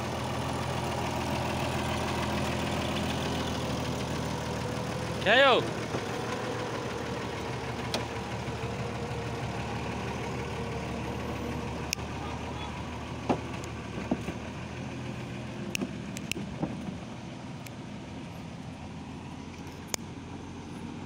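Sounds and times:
truck engine running: 0.0 - 21.0.

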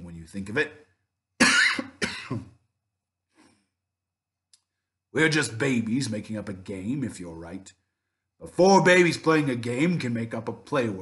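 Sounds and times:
man coughing: 1.4 - 2.7.

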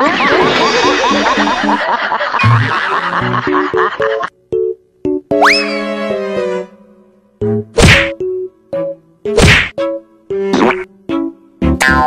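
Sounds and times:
music: 2.4 - 12.0
loud whack hits: 7.8 - 8.2, 9.4 - 9.7.

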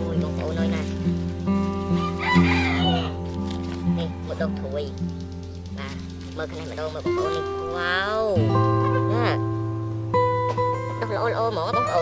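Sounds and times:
background music with beat: 0.0 - 11.1
rooster crowing: 2.0 - 3.3.

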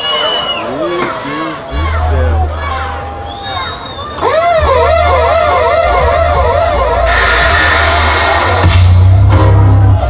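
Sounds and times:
dub reggae music: 1.7 - 10.0
swooping electronic siren tone: 4.2 - 9.2
loud burst of hiss: 7.1 - 9.1.

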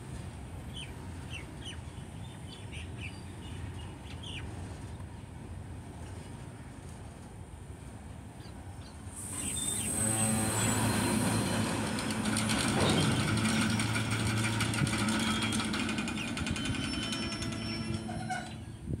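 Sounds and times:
low rumbling drone: 9.3 - 15.6
wheels clattering over rail joints: 10.1 - 19.0.

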